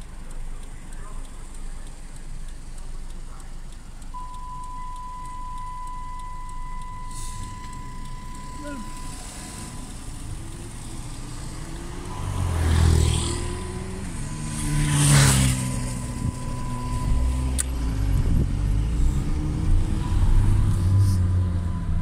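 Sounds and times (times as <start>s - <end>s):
low engine rumble: 0.0s - 22.0s
cars swishing past: 6.9s - 22.0s.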